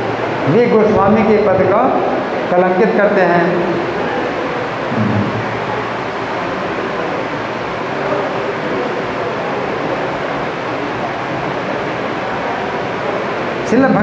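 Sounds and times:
steady hiss and rumble: 0.0 - 14.0.

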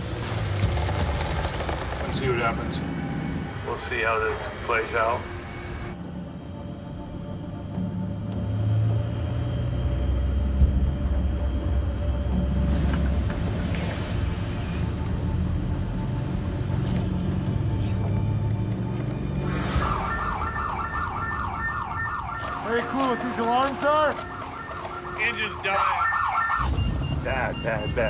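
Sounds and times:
engine alarm electronic warble: 2.0 - 28.0.

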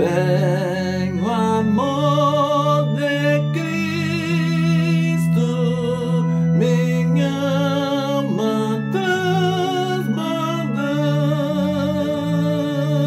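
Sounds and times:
man singing a hymn: 0.0 - 13.0
sustained instrumental accompaniment: 0.0 - 13.0.

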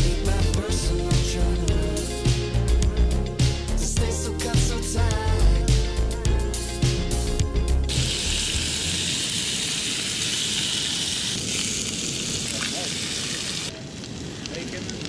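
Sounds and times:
music track: 0.0 - 9.0
bacon sizzling in a skillet: 7.9 - 13.7.

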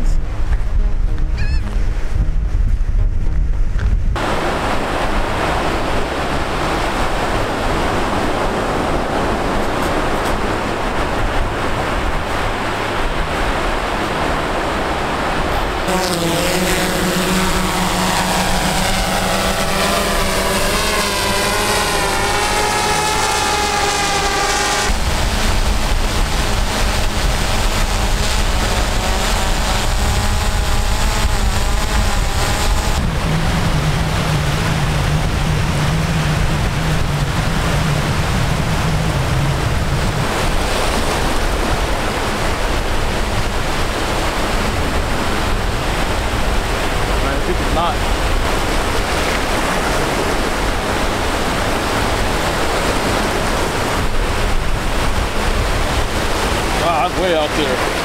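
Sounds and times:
drone propellers whining: 0.0 - 58.0
wind noise on microphone: 0.0 - 58.0
breaking surf: 4.2 - 58.0.

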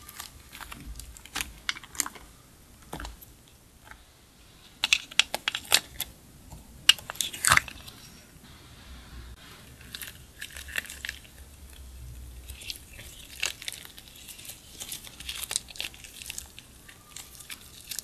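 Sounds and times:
slime squishing: 0.0 - 8.4, 9.4 - 18.0.

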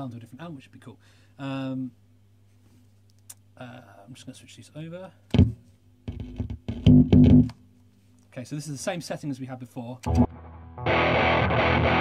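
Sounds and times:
mains hum: 0.0 - 10.3
loud amplifier crackles: 5.3 - 7.5
guitar cable jack pop: 5.3 - 7.6, 10.0 - 12.0.

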